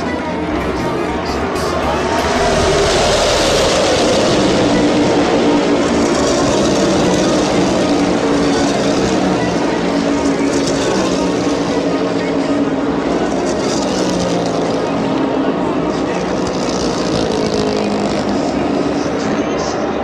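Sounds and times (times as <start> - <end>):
crowd voices: 0.0 - 20.0
race car engines passing: 0.0 - 20.0.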